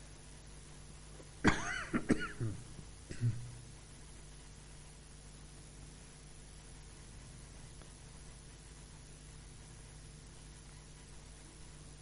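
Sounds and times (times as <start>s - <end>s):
low room hum: 0.0s - 12.0s
person coughing: 1.4s - 3.6s
throat-clearing: 1.5s - 3.6s.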